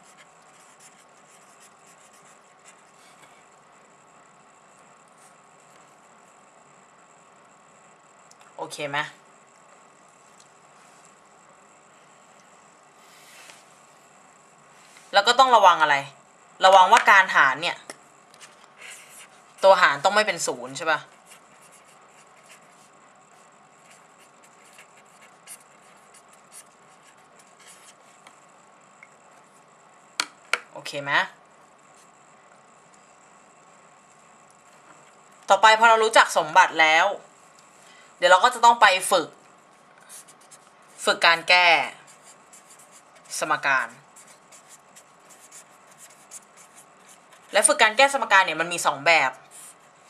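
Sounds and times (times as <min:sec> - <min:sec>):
pen scratching while writing: 0:00.0 - 0:02.9, 0:21.1 - 0:22.9, 0:23.8 - 0:28.1, 0:44.2 - 0:47.7.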